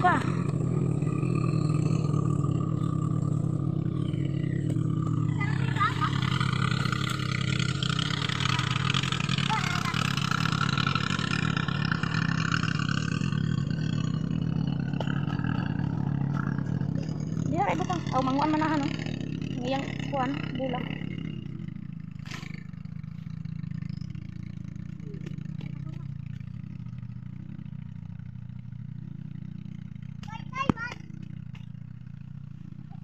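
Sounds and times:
low engine drone: 0:00.0 - 0:33.0.

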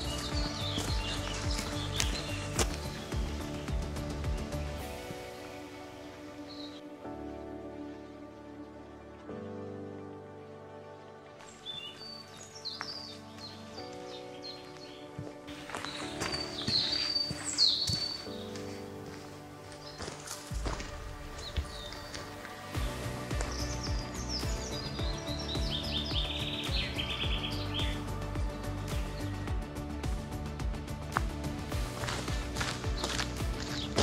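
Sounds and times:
soft background music: 0:00.0 - 0:34.0
songbirds chirping and singing: 0:00.0 - 0:34.0.

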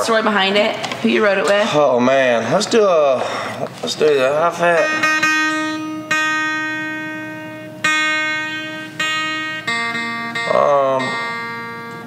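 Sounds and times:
acoustic guitar chords strummed: 0:04.2 - 0:12.0.

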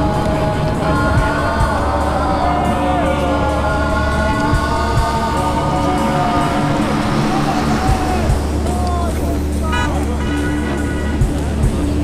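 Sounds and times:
people calling out: 0:00.0 - 0:11.9.

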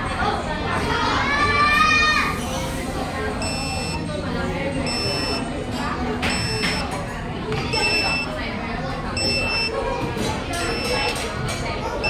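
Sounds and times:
high-pitched pager beep: 0:03.4 - 0:04.0, 0:04.8 - 0:05.5, 0:06.2 - 0:06.9, 0:07.7 - 0:08.4, 0:09.2 - 0:09.8, 0:10.6 - 0:11.2.

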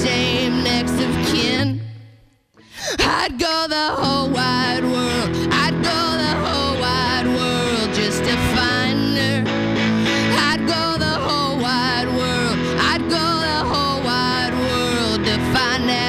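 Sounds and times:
electric guitar: 0:00.0 - 0:16.0
woman singing: 0:00.0 - 0:16.0.

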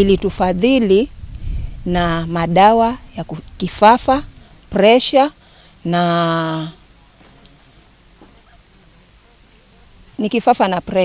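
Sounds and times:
faint distant sounds: 0:00.0 - 0:11.0.

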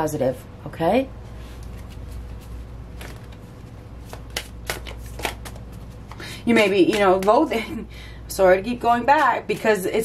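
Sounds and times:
cards being shuffled: 0:01.5 - 0:07.5.

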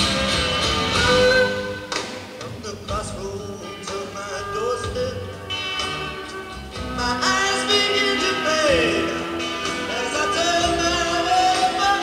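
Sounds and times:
live rock band playing: 0:00.0 - 0:12.0
sliding lead guitar line: 0:00.0 - 0:12.0.

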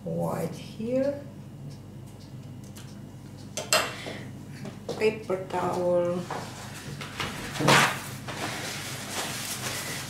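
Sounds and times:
steady low hum: 0:00.0 - 0:10.0
paper towel rustling: 0:06.3 - 0:10.0.

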